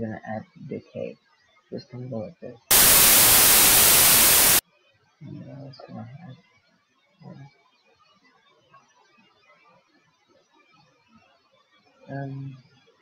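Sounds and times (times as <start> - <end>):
synth white-noise note: 2.7 - 4.6.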